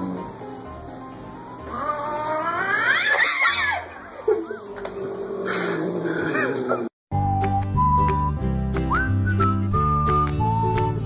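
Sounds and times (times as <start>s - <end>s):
cat yowling: 1.7s - 4.8s.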